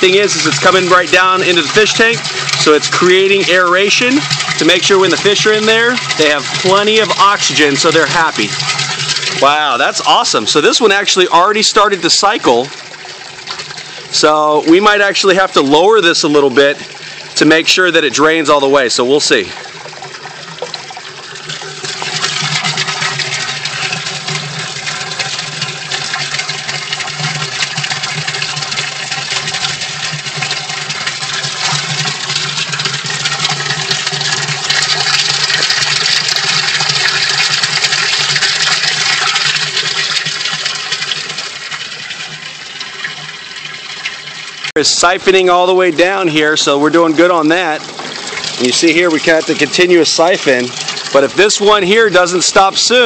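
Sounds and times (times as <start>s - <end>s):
water pouring into tank: 0.0s - 53.0s.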